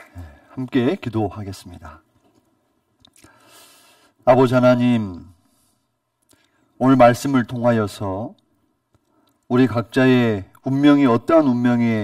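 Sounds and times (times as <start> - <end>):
faint mouth clicks: 2.3 - 3.4, 8.9 - 9.5
soft breath in: 3.2 - 4.2.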